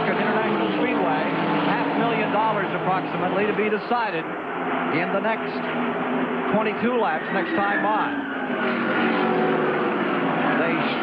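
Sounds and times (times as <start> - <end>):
race car engines howling: 0.0 - 11.0.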